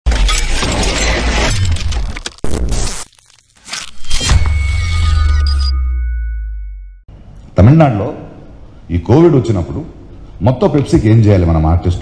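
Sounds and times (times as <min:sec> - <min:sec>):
dense shatter-like crackling: 0:00.1 - 0:03.8.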